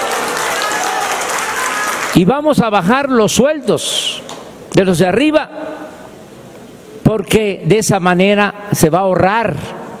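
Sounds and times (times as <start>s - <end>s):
audience applauding: 0.0s - 2.3s.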